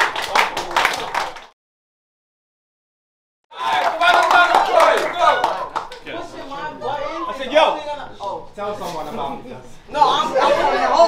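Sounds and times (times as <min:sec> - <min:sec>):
people clapping: 0:00.0 - 0:01.6, 0:03.5 - 0:06.3
crowd talking and calling out: 0:03.6 - 0:11.0.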